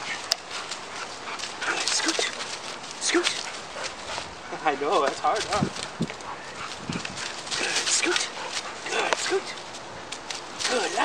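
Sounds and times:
footsteps on dry leaves: 0.0 - 11.0.

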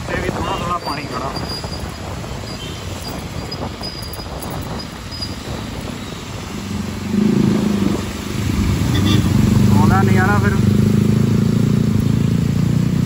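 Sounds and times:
motorcycle engine drone: 0.0 - 13.0
tyres rushing on wet road: 0.0 - 13.0.

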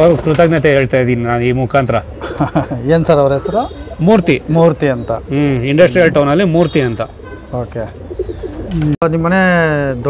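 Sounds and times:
pigeons cooing: 2.0 - 5.8, 6.4 - 9.0.

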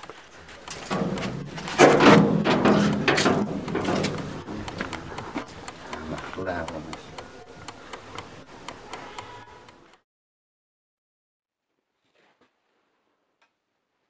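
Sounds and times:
metal door scraping clatter: 0.8 - 4.2
people talking: 2.0 - 9.7.

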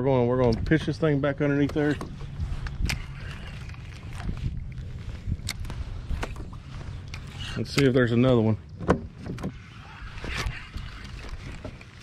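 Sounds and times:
wind rumble on microphone: 0.2 - 12.0.

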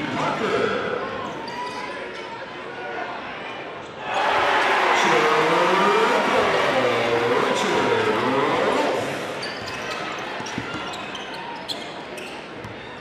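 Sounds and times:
crowd voices: 0.0 - 13.0.

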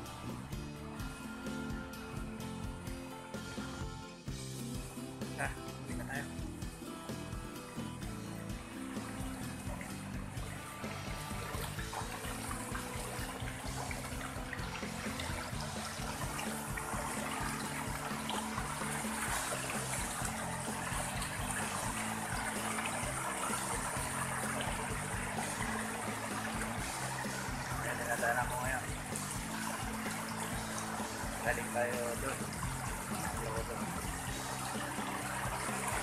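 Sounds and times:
background music: 0.0 - 36.0
stream running over rocks: 4.6 - 36.0.

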